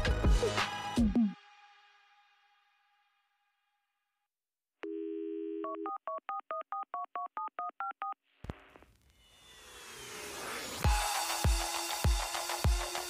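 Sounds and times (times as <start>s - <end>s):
telephone dial tone: 4.8s - 8.2s.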